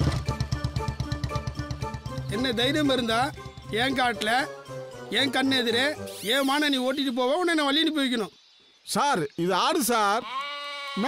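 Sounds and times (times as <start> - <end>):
goat bleating: 10.2 - 11.0.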